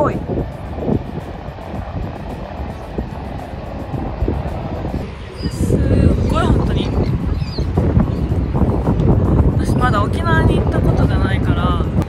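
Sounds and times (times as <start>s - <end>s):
faint background music: 0.0s - 12.0s
road traffic rumble: 0.0s - 12.0s
wind buffeting microphone: 0.0s - 12.0s.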